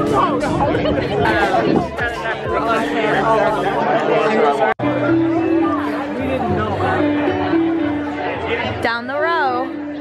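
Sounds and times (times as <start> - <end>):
people chatting: 0.0 - 4.8
music with long held notes: 0.0 - 10.0.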